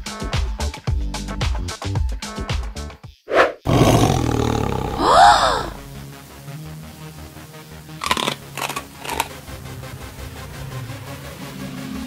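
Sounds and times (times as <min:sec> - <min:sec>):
whoosh: 0:03.3 - 0:03.6
animal roar sound effect: 0:03.3 - 0:05.9, 0:08.0 - 0:09.3
cry rising and falling in pitch: 0:03.7 - 0:05.9.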